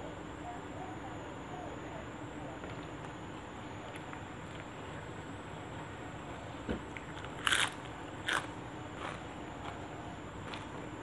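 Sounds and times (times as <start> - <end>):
person chewing: 7.1 - 9.8, 10.4 - 10.8.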